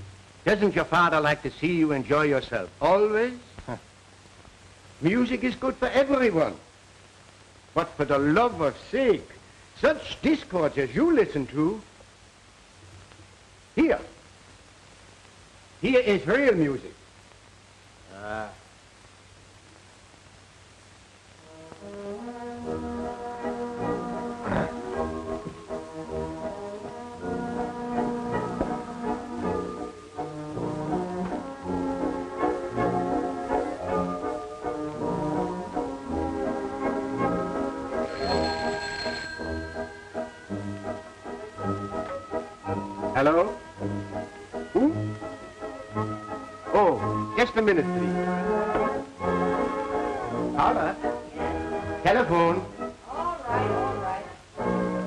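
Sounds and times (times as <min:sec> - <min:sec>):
orchestral music with brass: 0:21.5 - 0:39.0, 0:40.1 - 0:52.8.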